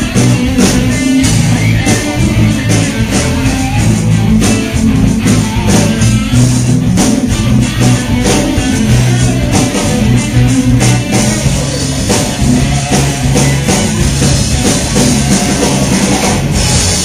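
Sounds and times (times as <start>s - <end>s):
drum kit beats: 0.0s - 17.0s
electric guitar: 0.0s - 17.0s.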